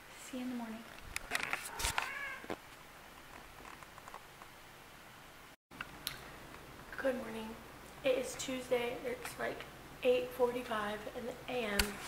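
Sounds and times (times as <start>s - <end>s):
cat meowing: 1.7s - 2.5s.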